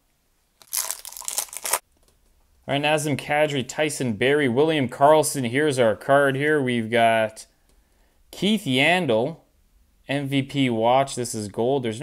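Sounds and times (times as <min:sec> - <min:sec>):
card pack wrapper tearing: 0:00.6 - 0:01.8.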